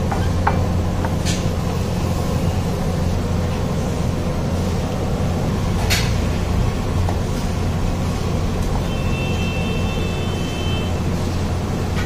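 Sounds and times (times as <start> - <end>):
steady low rumble: 0.0 - 8.9.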